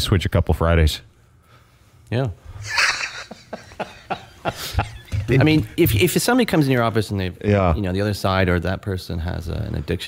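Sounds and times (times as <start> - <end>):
man's stifled chuckles: 2.6 - 5.3.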